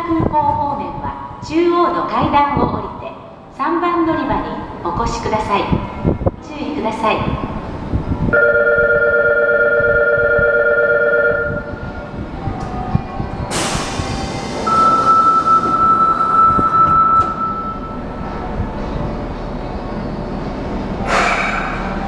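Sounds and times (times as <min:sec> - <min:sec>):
platform doors closing: 0:11.3 - 0:22.0
hissing air burst: 0:13.5 - 0:14.7
steady high tone: 0:14.6 - 0:18.6.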